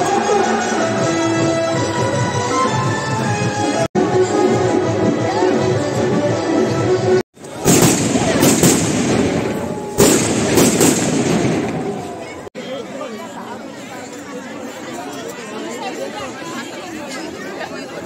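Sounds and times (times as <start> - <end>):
crowd chatter: 0.0 - 18.0
fireworks bangs and crackling: 7.4 - 12.4.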